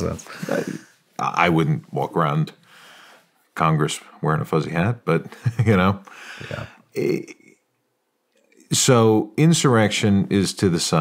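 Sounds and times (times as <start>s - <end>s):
man chuckling: 0.2s - 0.8s, 5.3s - 7.3s
man speaking briefly: 6.4s - 6.7s.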